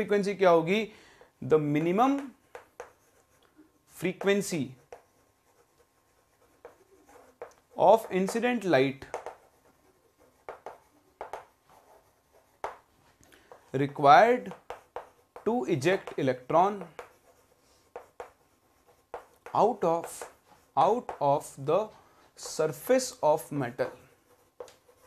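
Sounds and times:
chalk writing on a chalkboard: 0.0s - 25.0s.

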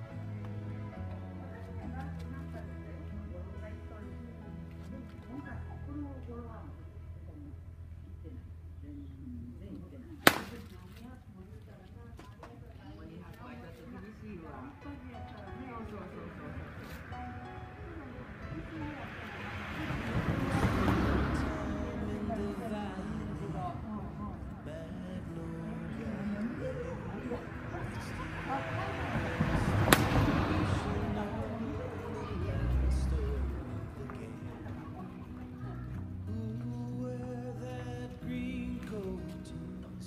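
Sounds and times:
background song: 0.0s - 6.3s, 14.8s - 40.0s
golf club striking ball: 10.2s - 10.7s, 29.9s - 30.3s.

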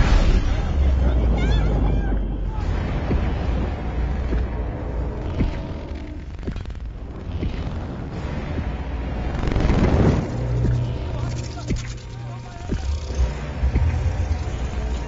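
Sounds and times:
action film music: 0.0s - 15.0s
deep heavy low rumble: 0.0s - 15.0s.

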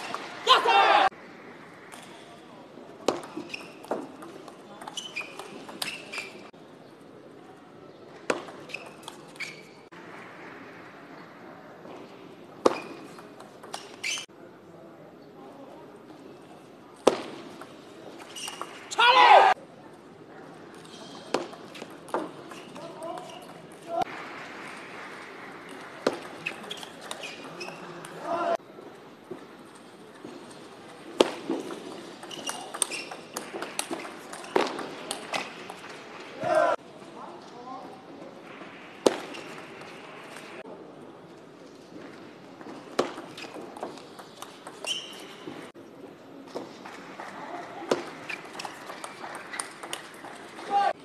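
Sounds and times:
short shouts and voices: 0.3s - 1.2s, 18.9s - 19.6s, 28.2s - 28.6s, 36.3s - 36.8s, 50.6s - 51.0s
table tennis ball clicks: 31.4s - 35.8s.

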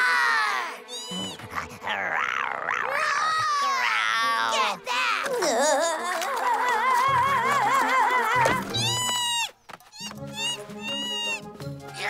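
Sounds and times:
cartoon character whimpering cry: 7.0s - 11.4s.

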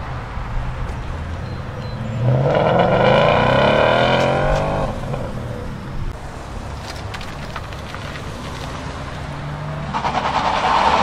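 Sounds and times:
car engine accelerating hard: 2.1s - 5.9s.

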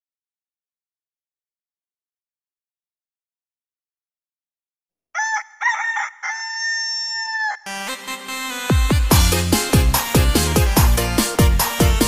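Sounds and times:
rooster crowing: 5.2s - 7.7s
electronic dance music: 7.7s - 12.0s.

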